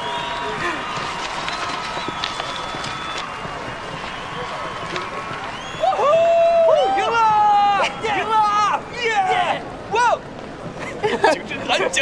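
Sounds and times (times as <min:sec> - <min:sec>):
indistinct crowd chatter: 0:00.0 - 0:12.0.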